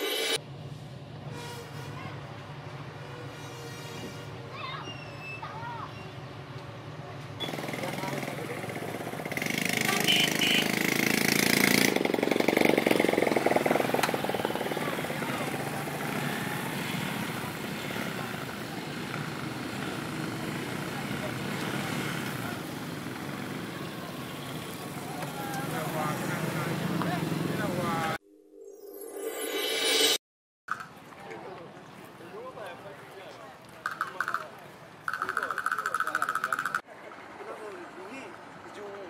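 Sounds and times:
vehicle engines running: 0.3 - 4.8, 5.4 - 28.2
people's voices: 6.9 - 10.4, 14.4 - 28.2.

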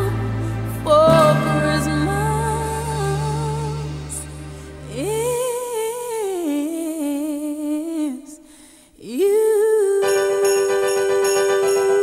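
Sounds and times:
woman singing long note: 0.8 - 7.2.

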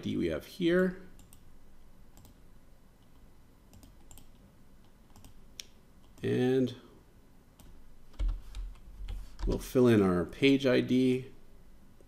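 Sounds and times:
computer keyboard keystrokes: 2.1 - 2.4, 3.7 - 4.4, 5.1 - 6.3, 7.6 - 9.7.

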